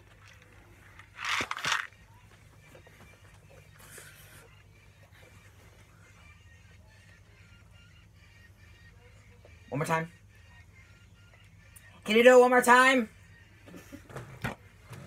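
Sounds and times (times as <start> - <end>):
faint music: 0.0 - 15.0
low steady room hum: 0.0 - 15.0.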